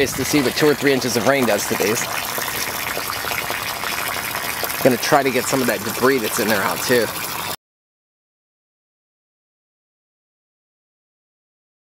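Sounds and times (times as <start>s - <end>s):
water rushing from a hose: 0.0s - 7.6s.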